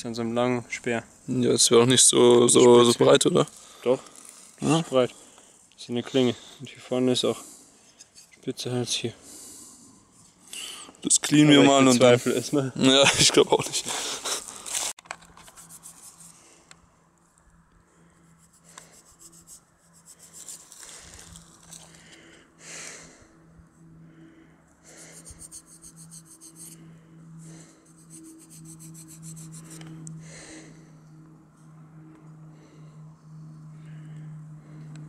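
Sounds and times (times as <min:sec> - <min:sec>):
fingers rubbing dirt off metal: 0:15.4 - 0:16.3, 0:25.0 - 0:26.8, 0:27.9 - 0:29.8
steady low hum: 0:15.7 - 0:35.0.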